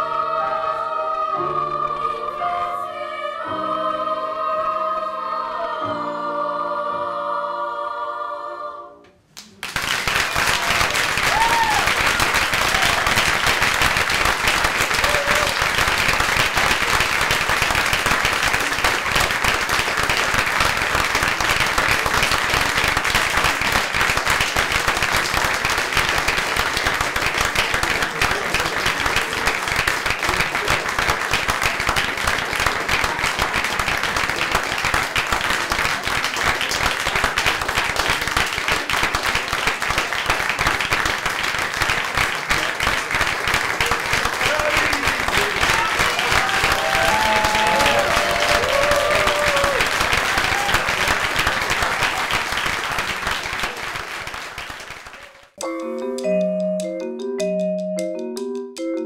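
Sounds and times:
audience applauding: 9.4s - 55.6s
short cheers: 10.6s - 13.2s, 14.9s - 15.6s, 44.4s - 51.2s.

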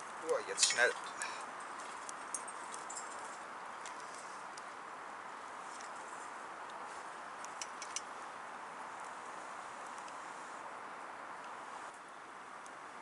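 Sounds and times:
dry grass and twigs crackling: 0.0s - 10.6s
faint steady hiss: 0.0s - 13.0s.

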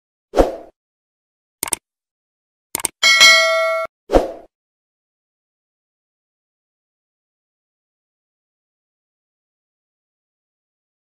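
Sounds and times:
notification ding: 3.0s - 3.9s.

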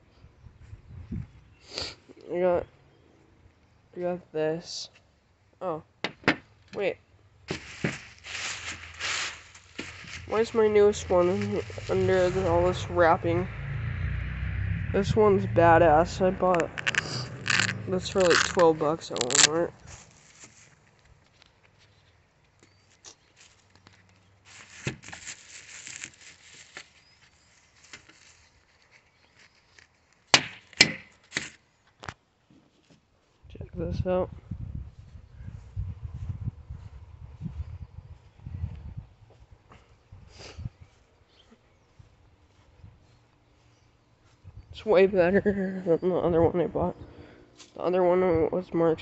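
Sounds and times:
plastic wrapping rustling: 7.5s - 12.4s, 16.8s - 21.2s, 23.3s - 30.3s
sharp clicks: 16.5s - 19.6s.

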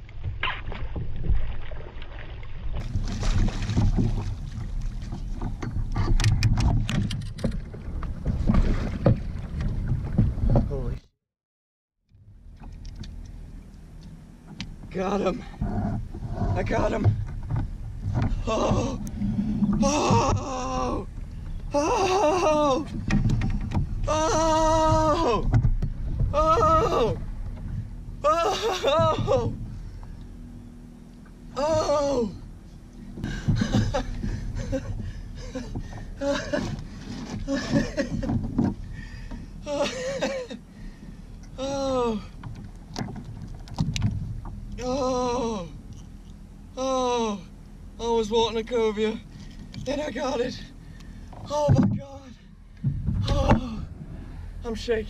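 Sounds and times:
water splashing: 0.0s - 5.9s
wind rumble on microphone: 0.0s - 11.1s, 14.5s - 30.7s, 42.3s - 44.9s, 51.3s - 55.0s
man yelling excitedly: 26.4s - 27.2s.

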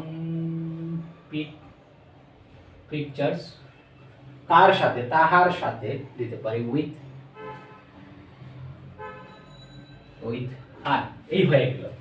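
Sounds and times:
faint vehicle horn toot: 7.4s - 8.0s, 9.0s - 10.2s.

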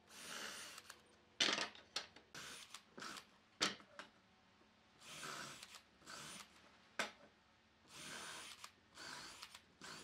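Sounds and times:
cordless drill boring into wood: 7.9s - 10.0s.

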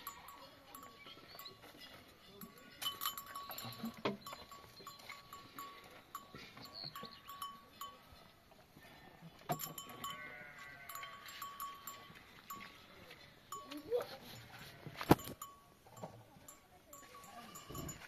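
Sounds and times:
animal bells clinking: 0.0s - 18.0s
faint bleat: 10.0s - 11.2s.

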